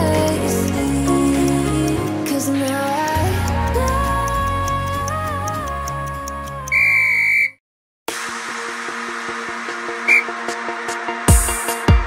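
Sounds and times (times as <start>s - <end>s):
background music: 0.0s - 6.9s, 8.1s - 12.0s
electronic timer beep: 6.7s - 7.6s.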